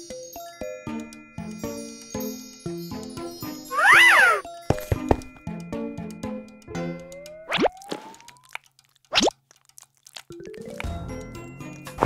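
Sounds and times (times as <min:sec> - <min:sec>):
light background music: 0:00.0 - 0:08.4, 0:10.3 - 0:12.0
upward-swooping cartoon plops: 0:07.2 - 0:09.3.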